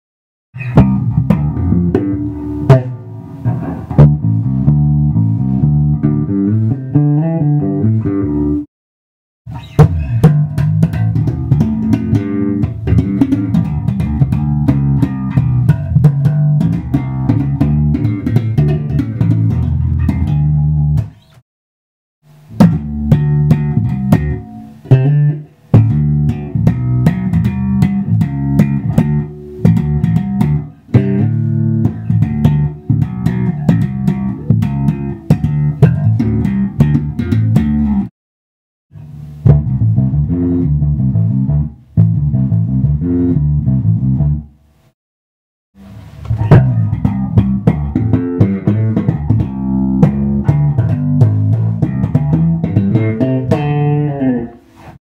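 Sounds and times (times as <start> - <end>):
electric bass playing: 0.6 - 8.7, 9.5 - 21.3, 22.3 - 38.1, 38.9 - 44.6, 45.8 - 55.0.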